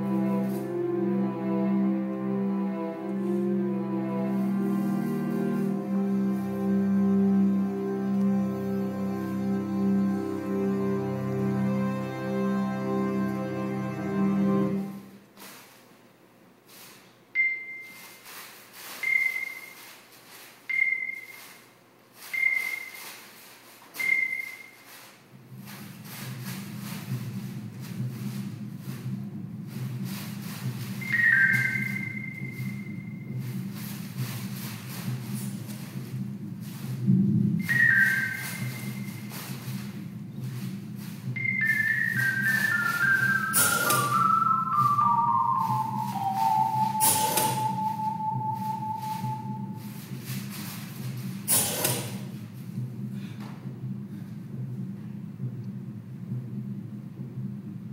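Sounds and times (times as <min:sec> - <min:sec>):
low steady drone: 0:00.0 - 0:15.1
high whistle-like electronic tone: 0:19.0 - 0:19.8, 0:22.3 - 0:23.1, 0:24.0 - 0:24.8, 0:30.8 - 0:33.9, 0:37.6 - 0:50.1
brief noisy burst: 0:41.0 - 0:50.8, 0:51.5 - 0:52.3.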